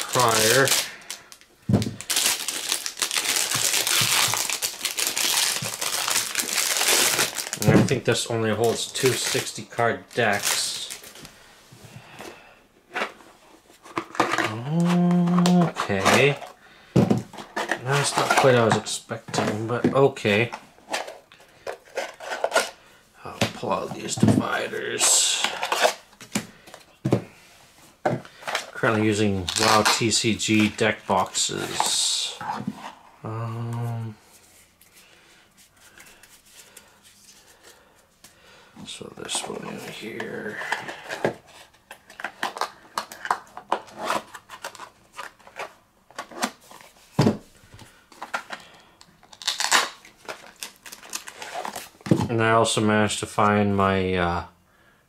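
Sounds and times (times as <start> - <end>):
cards and boxes rustling: 0.0 - 11.4, 12.1 - 27.4, 28.0 - 33.1, 33.7 - 52.5.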